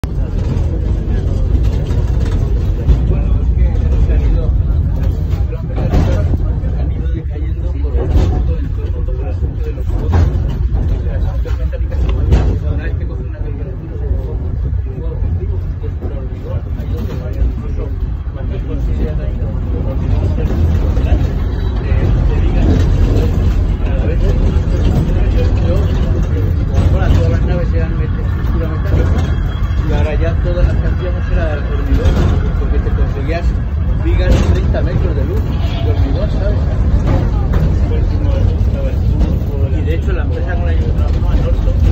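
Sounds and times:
funicular car rumbling: 0:00.0 - 0:41.9
passengers talking: 0:00.0 - 0:41.9.

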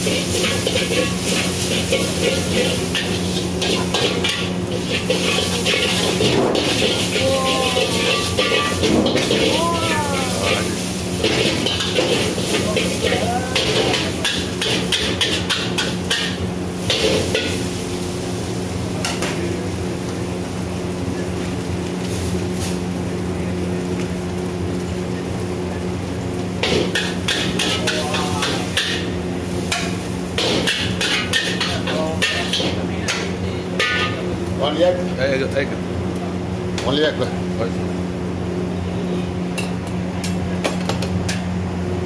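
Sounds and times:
spatula clanking against wok: 0:00.0 - 0:09.6, 0:11.2 - 0:17.6, 0:26.6 - 0:29.1, 0:29.7 - 0:34.2.

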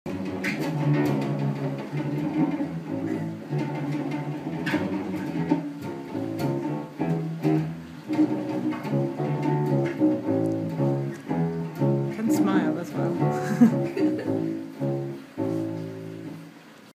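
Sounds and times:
plucked bass balalaika notes: 0:00.1 - 0:16.5.

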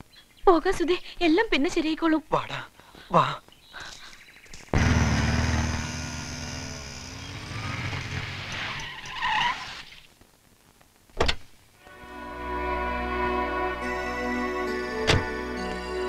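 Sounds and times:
motorcycle engines revving: 0:04.8 - 0:08.8.

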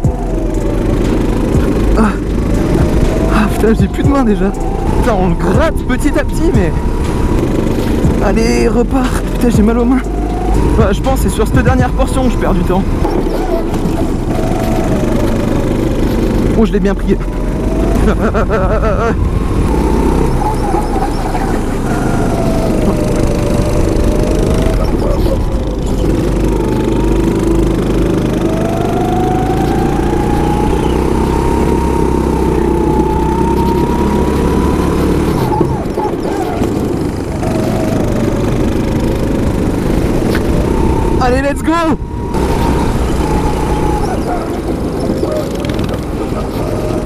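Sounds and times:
go-kart engine revving: 0:00.0 - 0:47.0.

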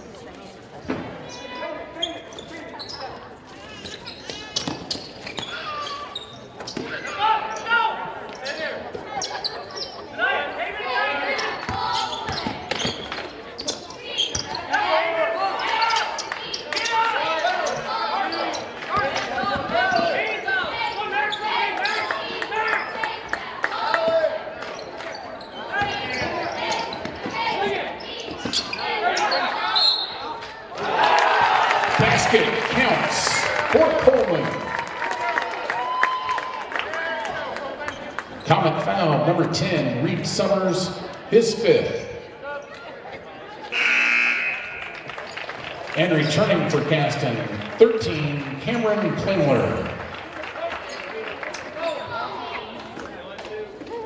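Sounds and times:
shouts and chatter: 0:05.4 - 0:12.9, 0:13.5 - 0:38.5, 0:40.6 - 0:45.5.

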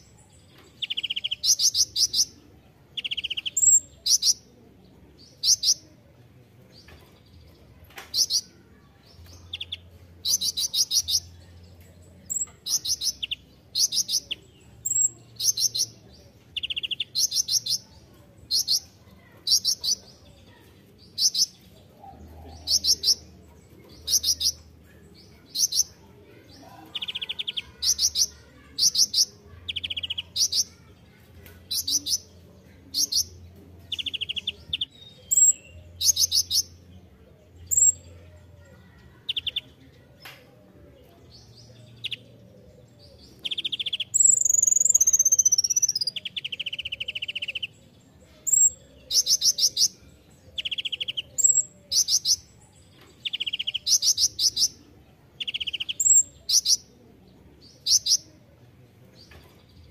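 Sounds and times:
sunbird trilled chirping: 0:43.5 - 0:47.7.

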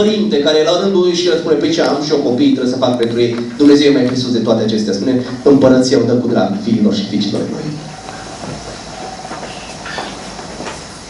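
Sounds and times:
background hiss: 0:00.0 - 0:11.0
faint steady hum: 0:00.0 - 0:11.0.

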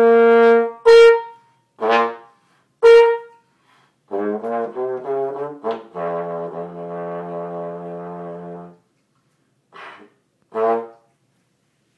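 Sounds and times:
trombone long note: 0:02.8 - 0:03.3, 0:04.1 - 0:08.8.

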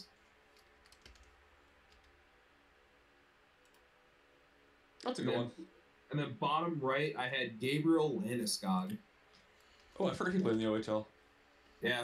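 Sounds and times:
faint computer clicks: 0:03.6 - 0:03.9, 0:08.8 - 0:10.8.

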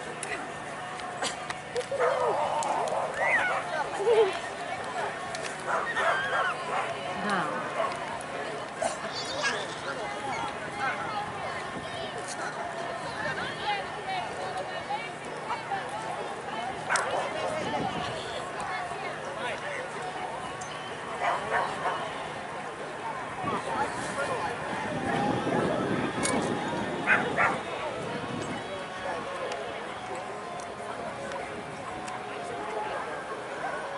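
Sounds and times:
dog barking: 0:27.1 - 0:27.6.

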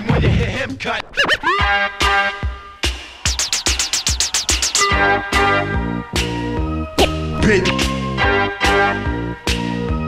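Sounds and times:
vinyl record scratching: 0:00.0 - 0:04.9.

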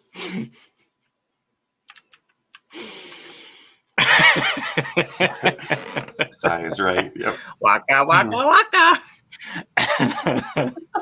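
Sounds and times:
man laughing: 0:04.0 - 0:07.7, 0:09.4 - 0:11.0.

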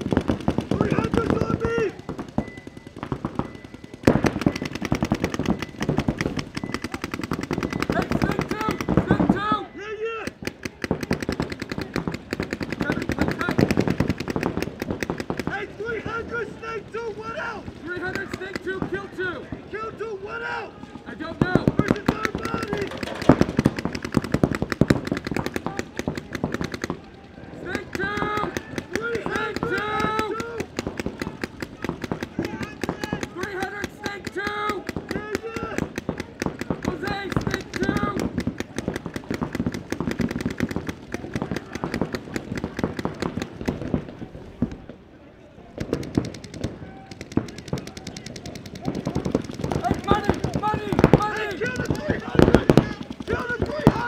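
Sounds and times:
paintball guns firing: 0:00.0 - 0:20.4, 0:21.0 - 0:45.0, 0:45.7 - 0:54.0
people calling out: 0:00.6 - 0:54.0.

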